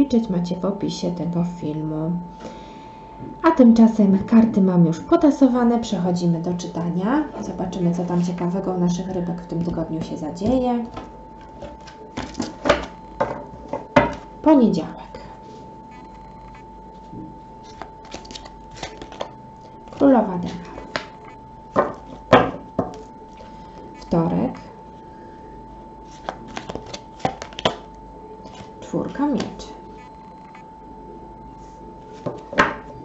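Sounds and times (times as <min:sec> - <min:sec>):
cards knocking on wooden table: 0:10.4 - 0:14.2, 0:21.8 - 0:23.0, 0:32.2 - 0:32.9
playing cards clicking and flicking: 0:10.9 - 0:14.3, 0:17.6 - 0:23.1, 0:26.1 - 0:28.8.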